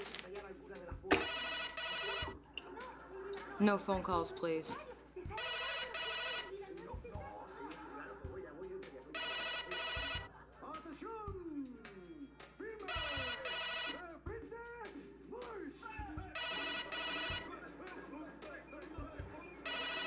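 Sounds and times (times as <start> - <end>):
telephone ringing: 1.1 - 2.5, 5.3 - 6.6, 9.1 - 10.3, 12.9 - 14.1, 16.3 - 17.6, 19.6 - 20.0.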